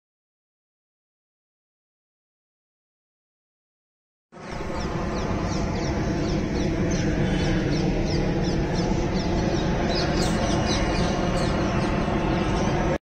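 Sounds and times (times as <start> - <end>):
flock of birds calling: 4.4 - 13.0.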